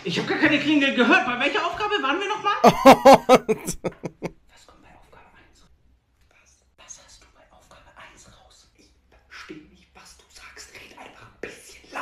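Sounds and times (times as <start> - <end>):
faint whispering voices: 6.3 - 12.0.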